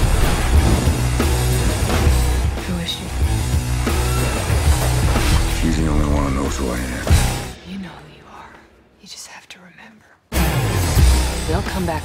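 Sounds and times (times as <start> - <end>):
person whispering: 7.7 - 10.3.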